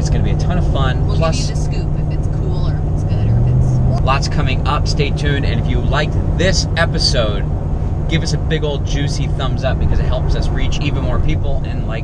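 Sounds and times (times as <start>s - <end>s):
faint voices: 0.0s - 7.4s, 8.1s - 12.0s
low hum: 0.0s - 12.0s
road and engine rumble: 0.0s - 12.0s.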